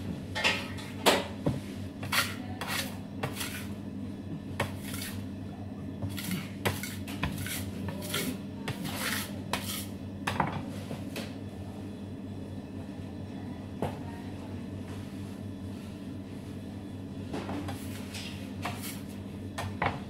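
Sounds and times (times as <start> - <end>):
steady low hum: 0.0 - 20.0
metal scraper scraping steel table: 2.0 - 3.8, 4.6 - 5.2, 6.0 - 9.9.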